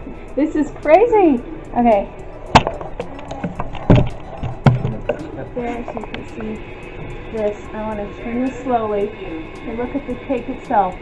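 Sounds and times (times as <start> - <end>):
camera handling knocks: 2.6 - 5.2.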